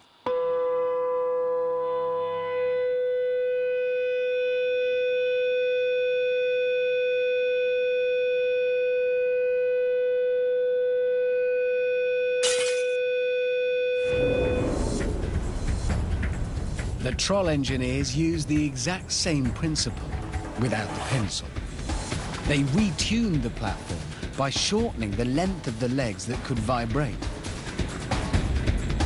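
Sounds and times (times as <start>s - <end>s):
loud steady resonant tone: 0.0s - 11.4s, 12.6s - 20.6s
rushing noise: 14.0s - 22.9s.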